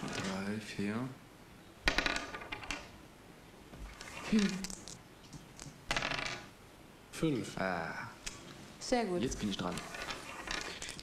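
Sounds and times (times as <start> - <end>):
dice clattering on a table: 1.9 - 2.9, 4.0 - 6.5, 9.6 - 11.0.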